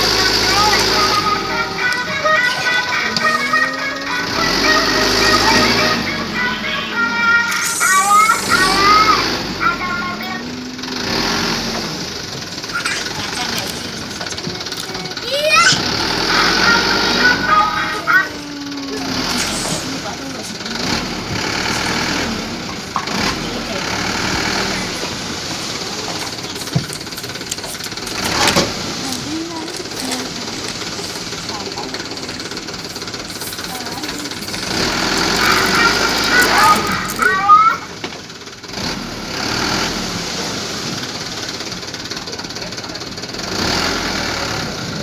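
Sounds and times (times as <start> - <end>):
background voices: 0.0 - 37.6.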